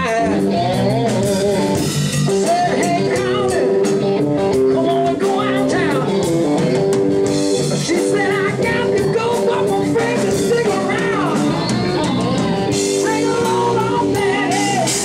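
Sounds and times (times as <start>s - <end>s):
man singing: 0.0s - 6.9s, 7.7s - 15.0s
live blues rock band: 0.0s - 15.0s.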